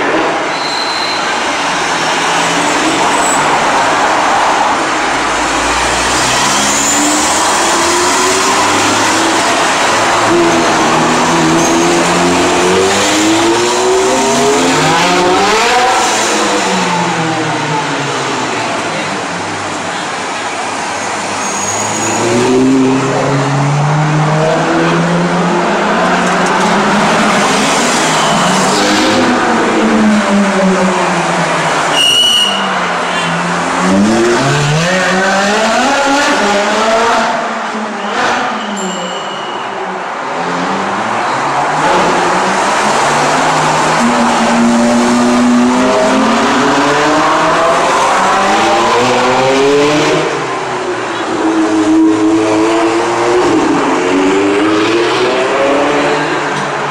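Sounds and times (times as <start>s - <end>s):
high-pitched squeals: 0.5s - 1.6s
sports cars revving past: 1.6s - 19.6s, 21.2s - 31.9s, 32.8s - 38.8s, 40.0s - 56.9s.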